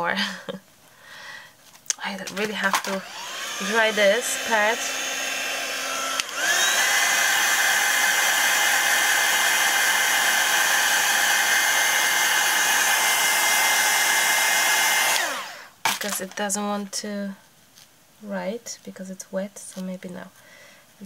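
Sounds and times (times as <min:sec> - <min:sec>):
heat tool blowing hot air: 0:02.3 - 0:15.8.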